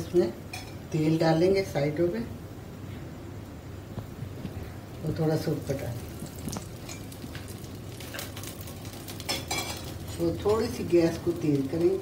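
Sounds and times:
batter sizzling in oil: 4.9s - 12.0s
metal utensil clicking on pan: 9.1s - 10.6s.

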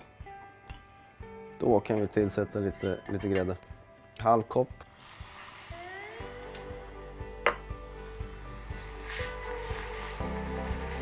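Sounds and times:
cream sizzling and bubbling: 4.9s - 11.0s.

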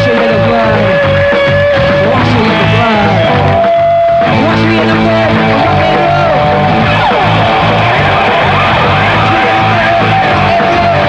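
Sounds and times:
electric guitar notes bending: 0.0s - 11.0s
rock band playing live: 0.0s - 11.0s.

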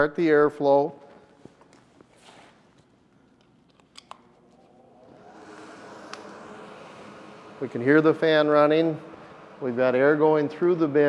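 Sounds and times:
blower spinning up: 4.1s - 11.0s.

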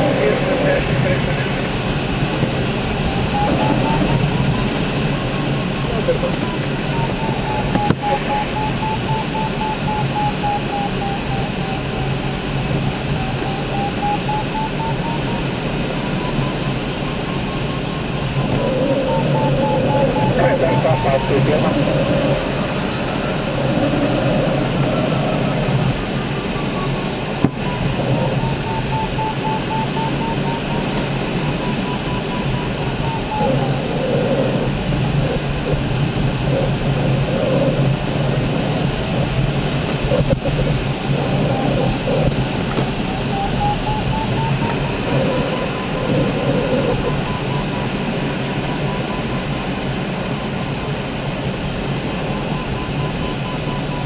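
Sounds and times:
airflow rushing: 0.0s - 14.3s, 15.2s - 48.5s
variometer beeping: 0.0s - 51.1s, 52.0s - 54.0s.

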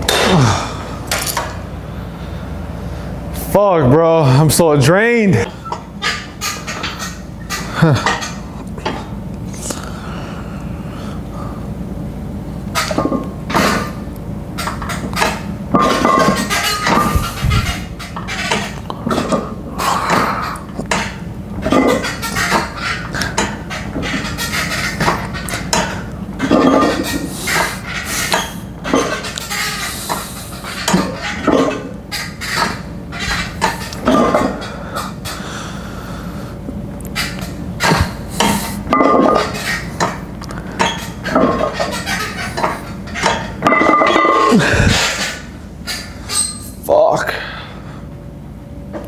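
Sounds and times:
man breathing hard: 0.1s - 1.1s, 1.8s - 3.3s, 9.6s - 11.8s, 34.7s - 36.6s, 44.4s - 45.4s, 47.3s - 48.2s
weight plates clinking: 40.8s - 45.2s.

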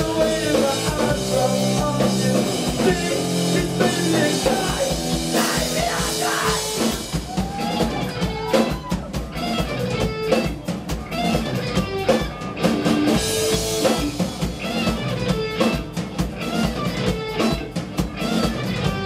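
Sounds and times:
distorted electric guitar: 0.0s - 19.0s
drum kit steady beat: 0.0s - 19.0s.

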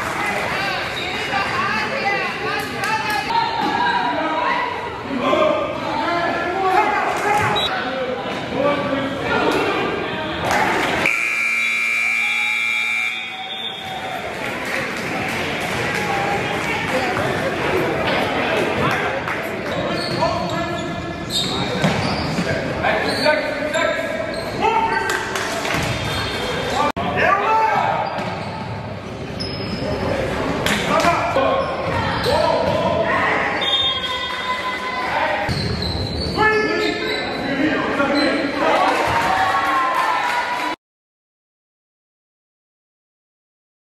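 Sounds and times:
voices of players and spectators: 0.0s - 40.8s
sneakers squeaking on court: 19.7s - 23.3s, 28.0s - 30.1s, 35.5s - 37.5s.

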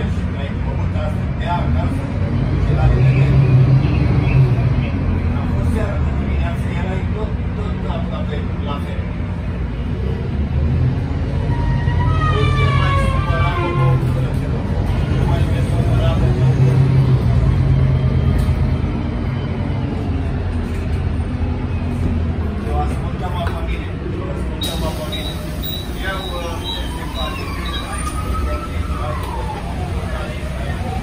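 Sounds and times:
bus diesel engine accelerating: 0.0s - 31.0s.

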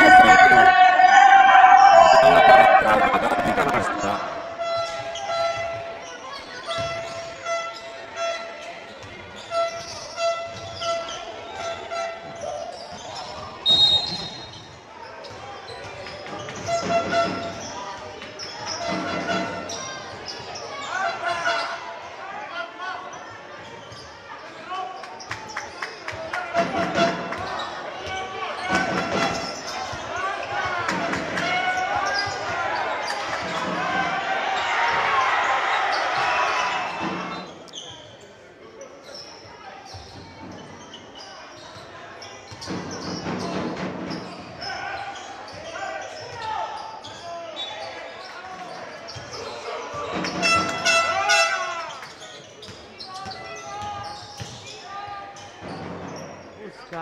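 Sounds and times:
players' voices echoing: 0.0s - 4.9s.

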